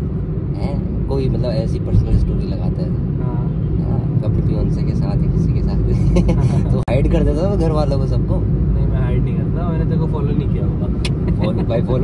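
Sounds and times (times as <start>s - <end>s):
car cabin engine and tyre rumble: 0.0s - 12.0s.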